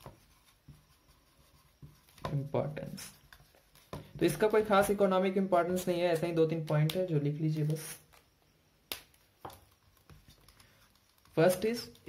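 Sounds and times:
marker writing on whiteboard: 0.0 - 2.3.

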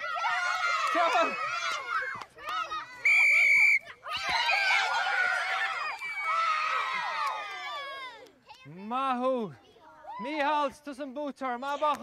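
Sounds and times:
children shouting and screaming: 0.0 - 8.8, 9.5 - 10.9
whistle blast: 3.0 - 3.8.

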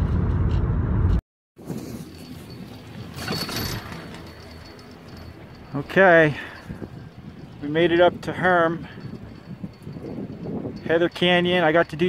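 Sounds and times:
wind on microphone: 6.3 - 12.0.

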